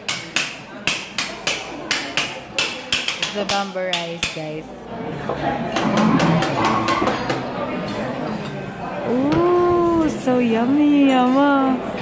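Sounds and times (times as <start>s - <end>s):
mallet tapping hard crust: 0.0s - 4.4s
restaurant chatter: 0.0s - 12.0s.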